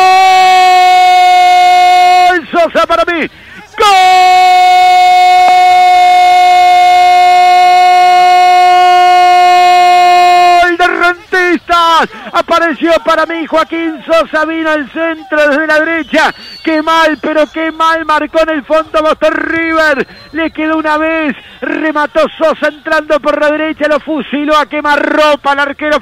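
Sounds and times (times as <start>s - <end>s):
commentator shouting long goal cry: 0.0s - 26.0s
commentator quick words: 1.6s - 26.0s.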